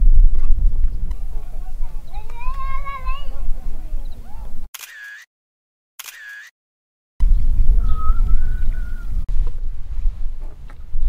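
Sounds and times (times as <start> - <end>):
wind rumbling on microphone: 0.0 - 4.7, 7.2 - 11.0
camera shutter clicks: 4.8 - 5.3, 6.0 - 6.5.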